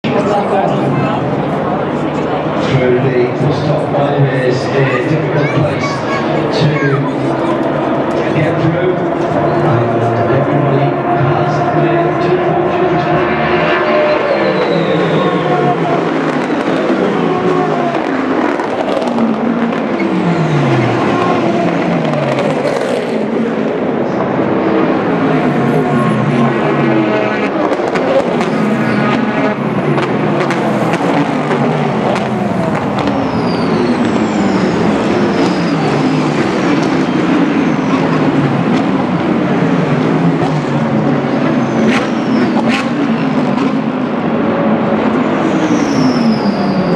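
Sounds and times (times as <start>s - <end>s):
race cars passing at speed: 0.0s - 46.9s.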